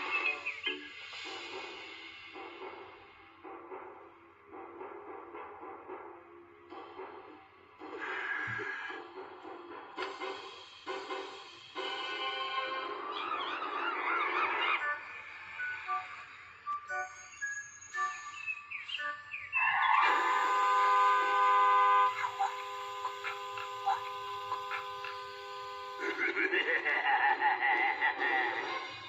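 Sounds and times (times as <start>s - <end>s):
cartoon music: 11.8s - 17.4s, 19.0s - 26.8s
cartoon character laughing: 26.0s - 28.8s.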